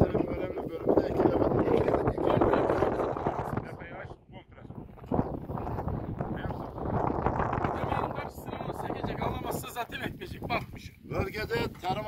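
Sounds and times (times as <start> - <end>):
indistinct voices talking: 0.0 - 12.0
wind on microphone: 0.0 - 12.0.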